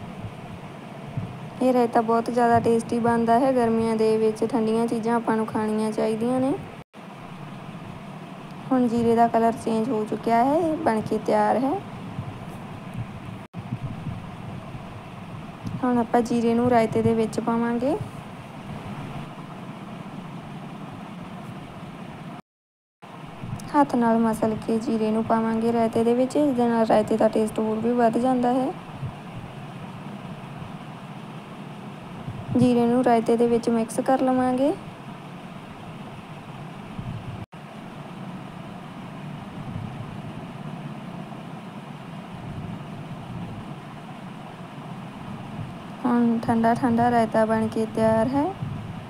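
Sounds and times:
low background hum: 0.0 - 22.4, 23.0 - 49.0
low background rumble: 0.0 - 22.4, 23.1 - 49.0.

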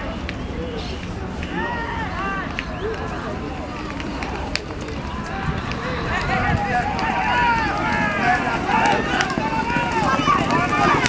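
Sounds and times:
spectators shouting: 0.0 - 11.0.

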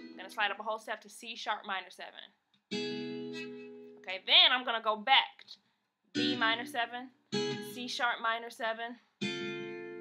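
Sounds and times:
acoustic guitar chord ringing: 0.0 - 0.3, 2.7 - 4.0, 6.2 - 7.8, 9.2 - 10.0.

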